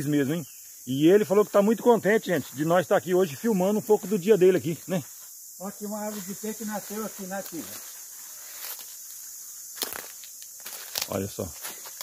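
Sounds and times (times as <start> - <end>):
insects buzzing: 0.0 - 12.0
footsteps on dry leaves: 5.1 - 12.0.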